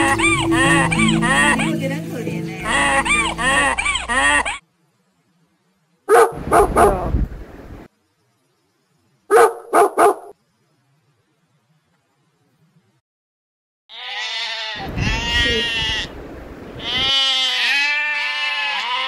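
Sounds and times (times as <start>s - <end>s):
music with warbling figure and bass: 0.0s - 4.2s
dog barking: 6.1s - 7.1s, 9.3s - 10.4s.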